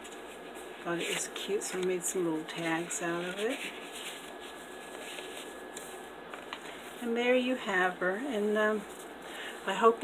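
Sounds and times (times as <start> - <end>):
paper rustling: 0.0 - 7.1, 8.7 - 10.0.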